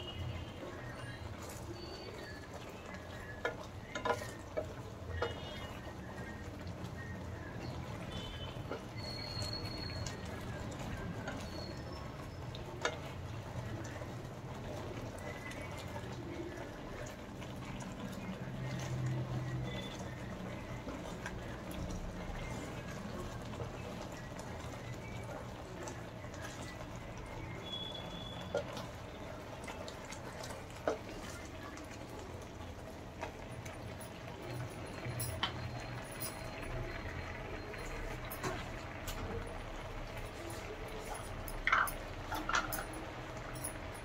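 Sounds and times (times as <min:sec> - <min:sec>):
thick mixture bubbling in a pan: 0:00.0 - 0:44.0.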